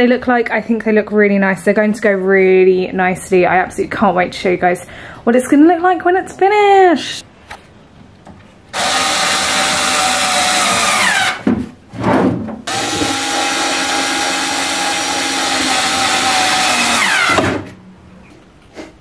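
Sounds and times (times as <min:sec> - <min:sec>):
power drill-driver running: 0:08.7 - 0:11.4, 0:12.7 - 0:17.4.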